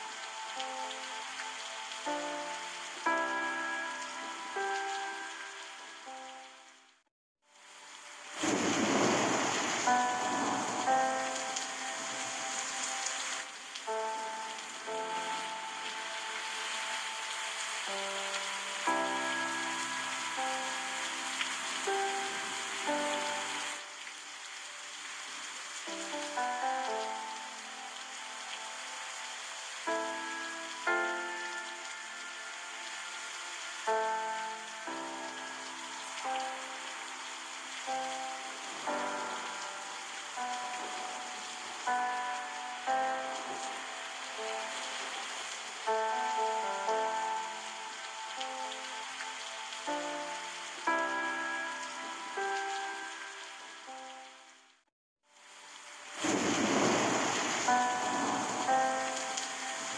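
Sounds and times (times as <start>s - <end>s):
rushing river water: 0.0s - 54.7s, 55.3s - 59.9s
slow melody of held notes: 0.0s - 59.9s.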